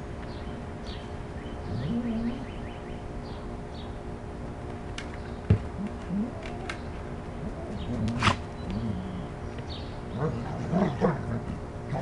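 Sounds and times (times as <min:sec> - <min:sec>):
dog growling: 0:07.4 - 0:09.4, 0:10.1 - 0:12.0.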